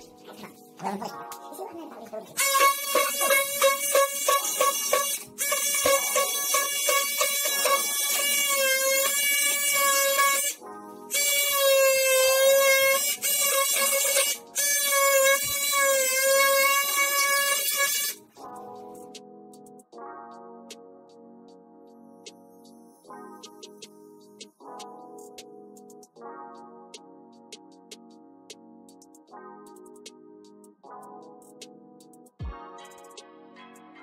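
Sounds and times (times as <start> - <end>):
oscillating multi-tool cutting wood: 2.4 - 10.5.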